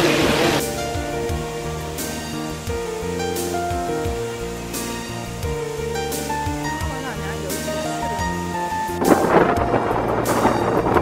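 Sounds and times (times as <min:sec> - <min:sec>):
background music: 0:00.0 - 0:11.0
wind buffeting microphone: 0:08.8 - 0:11.0.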